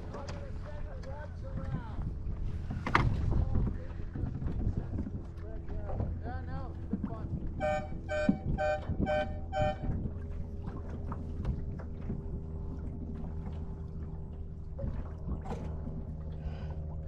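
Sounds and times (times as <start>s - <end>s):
water noise: 0.0s - 17.0s
wind: 0.0s - 17.0s
horn short blasts: 7.6s - 10.0s.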